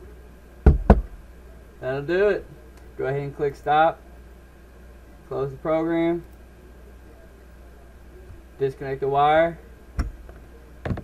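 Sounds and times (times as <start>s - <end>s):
sharp knocks with low thud: 0.7s - 1.2s.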